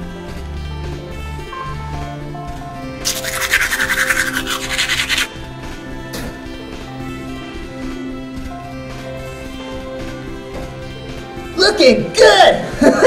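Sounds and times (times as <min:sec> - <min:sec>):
background music: 0:00.0 - 0:13.0
toothbrush scrubbing teeth: 0:03.0 - 0:05.3.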